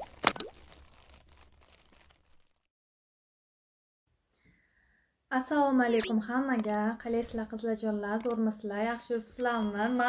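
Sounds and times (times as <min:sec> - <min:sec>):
cartoon pops with pitch glides: 0:05.9 - 0:06.2.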